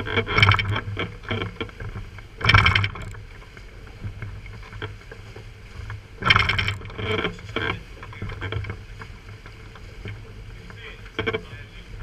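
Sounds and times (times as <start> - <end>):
outboard motors humming: 0.0 - 12.0
wake wash: 0.0 - 12.0.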